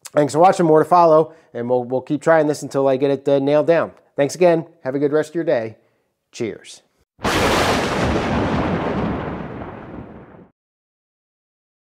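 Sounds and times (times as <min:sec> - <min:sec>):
explosion sound effect: 0:07.2 - 0:10.5.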